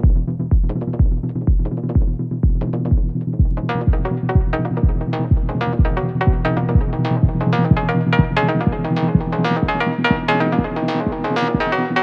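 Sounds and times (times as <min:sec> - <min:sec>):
hi-hats: 0:00.0 - 0:12.0
kick drum: 0:00.0 - 0:12.0
sustained bass: 0:00.0 - 0:12.0
synth melody: 0:02.7 - 0:12.0.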